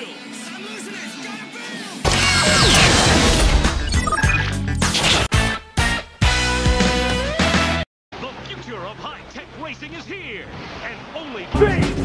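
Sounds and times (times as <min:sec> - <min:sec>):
music: 0:00.0 - 0:07.9, 0:11.6 - 0:12.0
loud crash sound effect: 0:02.1 - 0:04.0.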